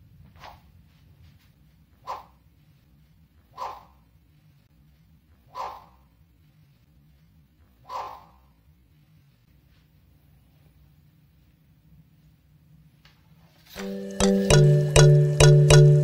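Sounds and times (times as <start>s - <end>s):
sword blade swishing through air: 3.6s - 4.0s.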